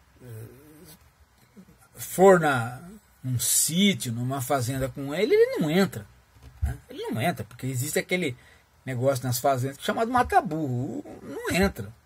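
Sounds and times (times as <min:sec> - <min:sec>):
faint mouth noises: 0:00.0 - 0:02.0.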